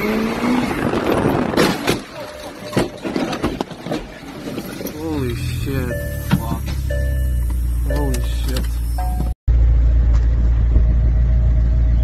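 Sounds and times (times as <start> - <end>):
road noise: 0.0 - 12.0
car engine accelerating: 4.9 - 12.0.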